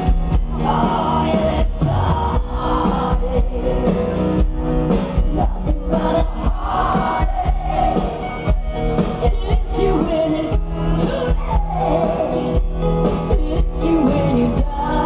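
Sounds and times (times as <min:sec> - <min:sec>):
drums keeping a steady beat: 0:00.0 - 0:15.0
live rock band: 0:00.0 - 0:15.0.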